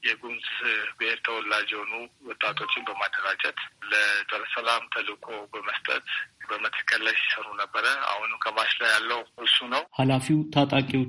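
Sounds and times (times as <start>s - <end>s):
person talking: 0.0s - 11.0s.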